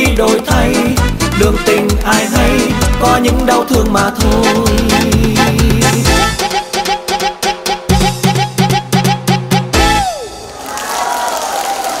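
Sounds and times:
dance music: 0.0s - 10.5s
audience applauding: 10.2s - 12.0s.

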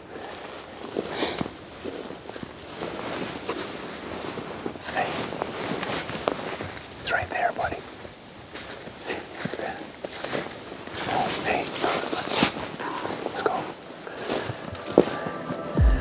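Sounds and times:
footsteps through snow and leaves: 0.0s - 16.0s
music with low beat: 14.7s - 16.0s.

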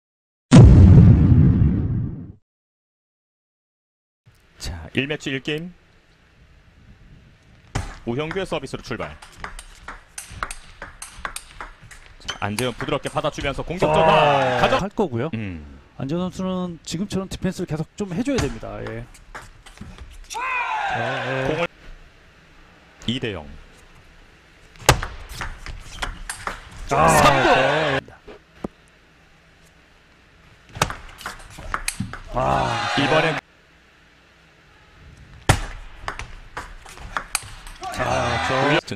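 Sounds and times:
table tennis ball clicks: 9.2s - 13.5s, 30.8s - 32.3s.

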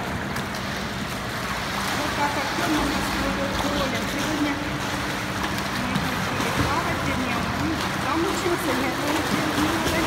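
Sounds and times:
swimmer splashing in pool: 0.0s - 10.0s.

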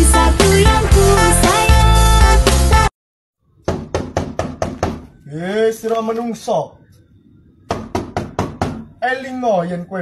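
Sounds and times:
gloved knocking on wooden door: 3.6s - 5.1s, 7.7s - 8.9s.

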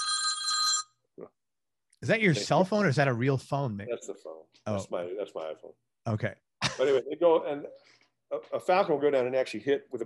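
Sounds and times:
phone ringtone chime: 0.0s - 1.0s.

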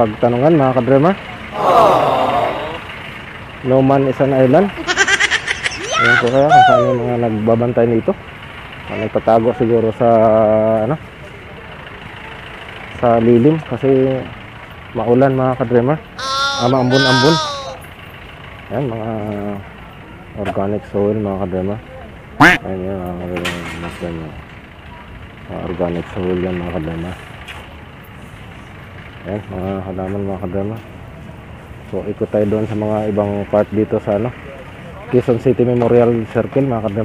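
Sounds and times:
road traffic rumble: 0.0s - 15.1s, 16.0s - 36.5s.

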